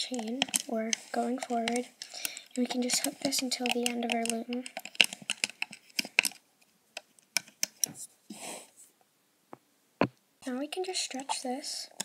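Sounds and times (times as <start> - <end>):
plastic clicks and taps: 1.6 - 6.4.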